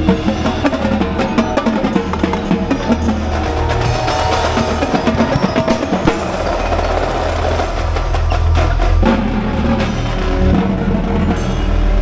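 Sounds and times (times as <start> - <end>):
tenor drums rapid strokes: 0.0 - 11.5.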